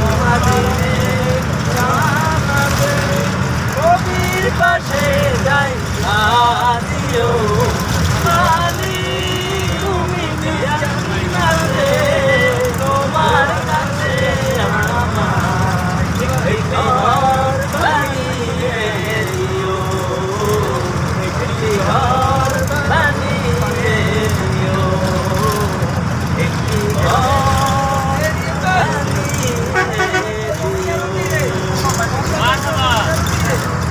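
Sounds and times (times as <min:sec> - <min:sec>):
bus engine rumble: 0:00.0 - 0:33.9
people's voices: 0:00.0 - 0:33.9
road noise: 0:00.0 - 0:33.9.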